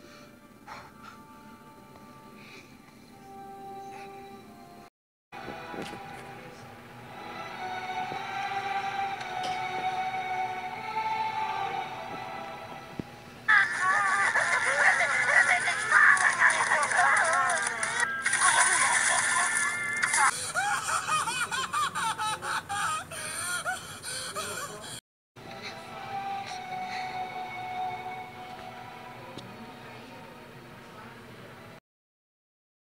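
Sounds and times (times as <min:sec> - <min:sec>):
soft music: 0:00.0 - 0:22.3, 0:25.4 - 0:31.8
cartoon voices wailing and sobbing: 0:13.5 - 0:17.7, 0:20.0 - 0:25.0.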